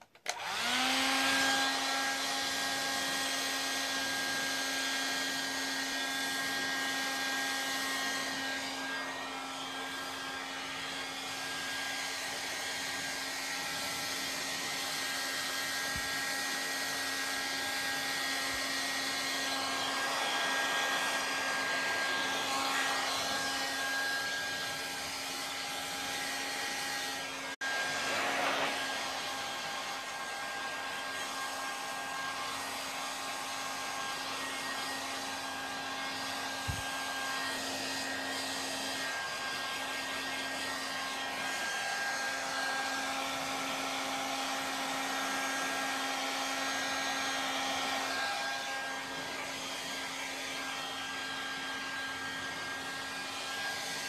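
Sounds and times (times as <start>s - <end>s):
hair dryer blowing: 0.0s - 54.0s.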